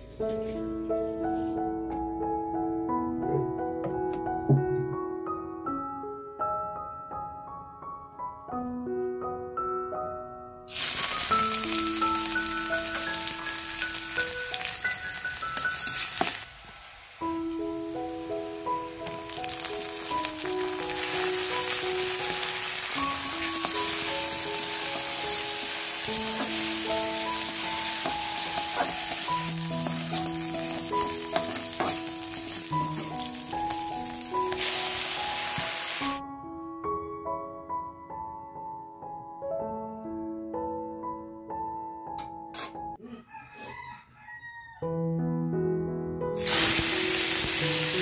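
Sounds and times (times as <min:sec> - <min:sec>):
soft piano music: 0:00.0 - 0:43.0, 0:44.8 - 0:48.0
food sizzling in hot oil: 0:10.7 - 0:36.2, 0:46.4 - 0:48.0
spatula stirring in metal pan: 0:27.6 - 0:33.3.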